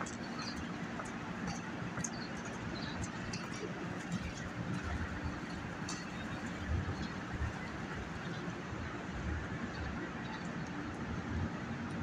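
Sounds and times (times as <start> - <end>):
city street noise: 0.0 - 12.0.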